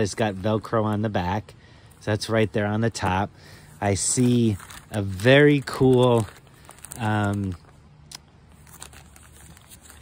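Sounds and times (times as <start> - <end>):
plastic bag crinkling: 2.0 - 10.0.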